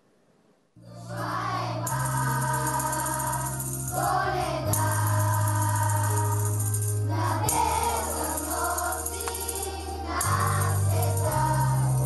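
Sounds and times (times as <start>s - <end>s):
musical accompaniment: 0.8s - 12.0s
children singing: 1.0s - 12.0s
jingling percussion: 1.8s - 12.0s.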